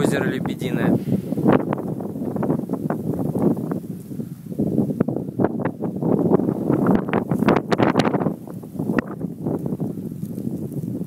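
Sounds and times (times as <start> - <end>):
crackles and rustling: 0.0 - 11.0
wind buffeting microphone: 0.0 - 11.0.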